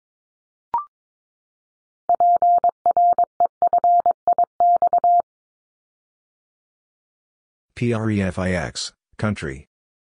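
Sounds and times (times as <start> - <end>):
morse code tone: 2.1 - 5.2.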